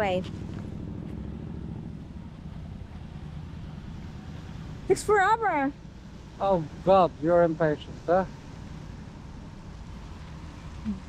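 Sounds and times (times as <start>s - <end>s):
low rumble of passing cars: 0.0s - 11.0s.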